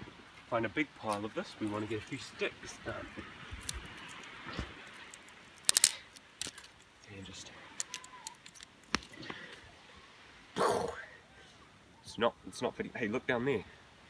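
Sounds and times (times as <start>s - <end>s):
stones clicking together: 3.6s - 7.1s, 7.8s - 9.2s.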